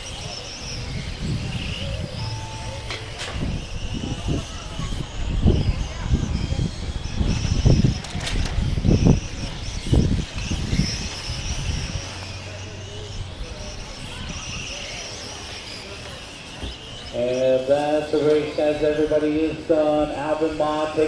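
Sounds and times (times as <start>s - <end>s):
wind rumbling on microphone: 0.0s - 14.8s
rc cars motors whining: 0.0s - 21.0s.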